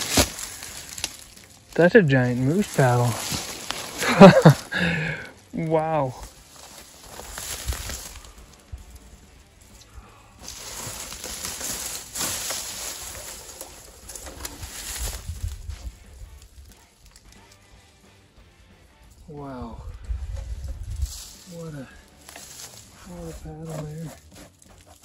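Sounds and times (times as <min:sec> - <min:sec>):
footsteps through dry brush: 0:00.0 - 0:19.3, 0:19.9 - 0:25.0
grass and twigs rustling: 0:00.0 - 0:25.0.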